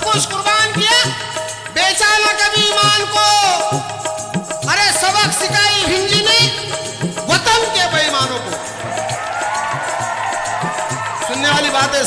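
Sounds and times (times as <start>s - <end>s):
devotional ensemble music: 0.0s - 12.0s
dholak and tabla beats: 0.0s - 12.0s.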